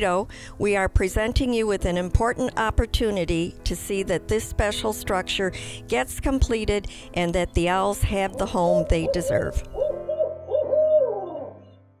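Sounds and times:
owl hooting: 0:08.3 - 0:11.7.

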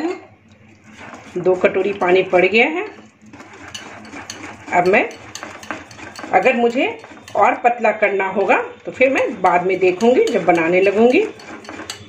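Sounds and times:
light clicks of batter mixing: 0:00.0 - 0:12.0
water trickling into batter: 0:00.1 - 0:12.0.

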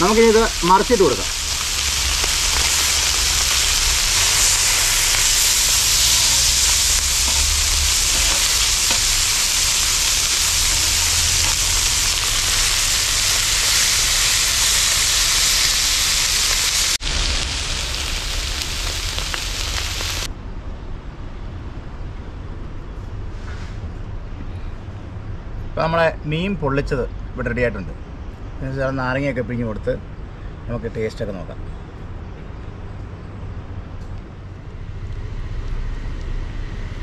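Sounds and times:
fish frying in sizzling oil: 0:00.0 - 0:20.3.

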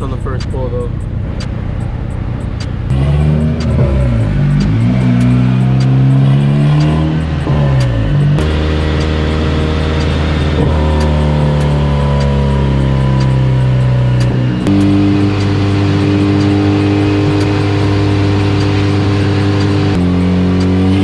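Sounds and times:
car engine on dyno: 0:00.0 - 0:21.0.

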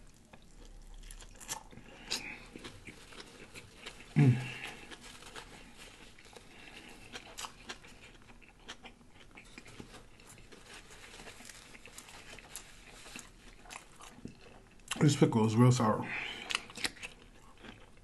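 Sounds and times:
chewing crunchy pickle: 0:00.0 - 0:15.2, 0:16.2 - 0:18.0.

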